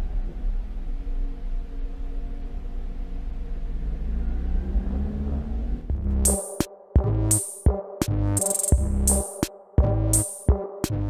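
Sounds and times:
car engine rumbling: 0.0 - 6.3.

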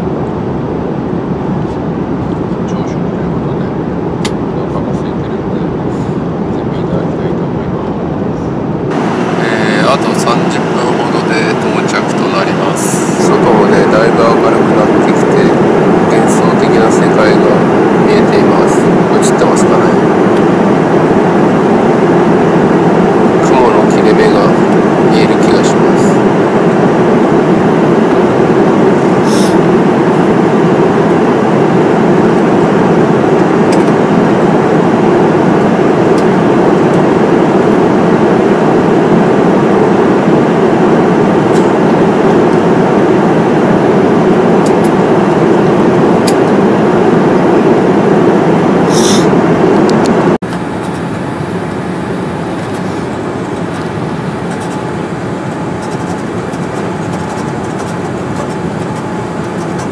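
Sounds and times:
jet airliner cabin noise: 0.0 - 59.9.

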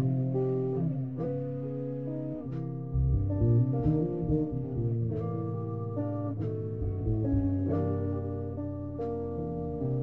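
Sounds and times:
electric bass line: 0.0 - 10.0
electric guitar playing blues: 0.0 - 10.0.

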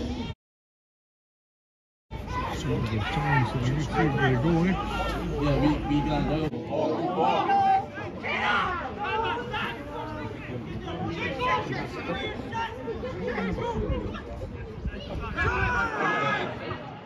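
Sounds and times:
voices calling out and chattering: 2.1 - 17.0.

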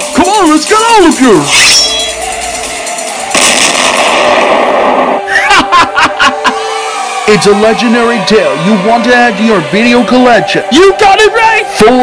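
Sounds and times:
explosion blast: 3.3 - 5.5
rush of noise: 3.3 - 5.5.

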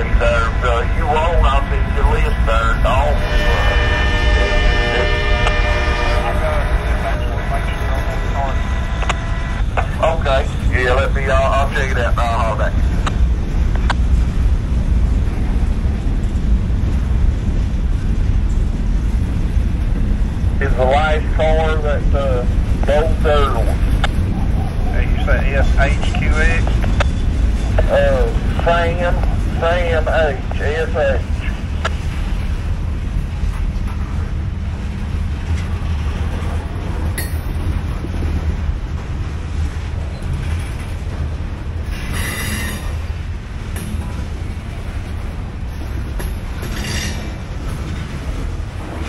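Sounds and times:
steady pitched tone: 0.0 - 12.8
train wheels rumbling on rail: 0.0 - 49.0.

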